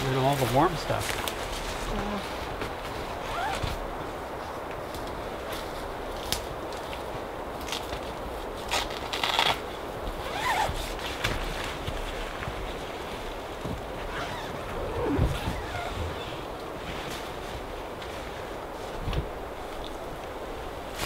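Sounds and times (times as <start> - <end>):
tent nylon rustling: 0.0 - 21.0
tent zipper: 3.2 - 3.8, 10.2 - 11.6, 14.0 - 16.5.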